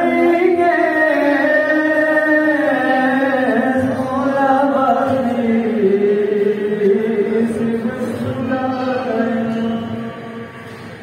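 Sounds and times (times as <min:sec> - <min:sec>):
person chanting devotional poem: 0:00.0 - 0:10.4.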